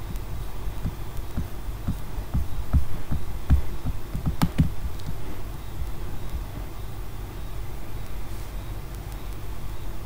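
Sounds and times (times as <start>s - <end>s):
soft low thumps: 0.0s - 5.2s.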